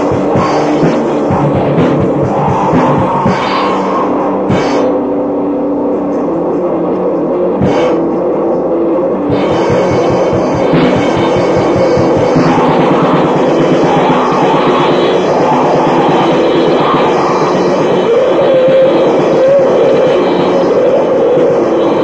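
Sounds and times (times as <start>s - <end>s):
black metal music: 0.0s - 22.0s.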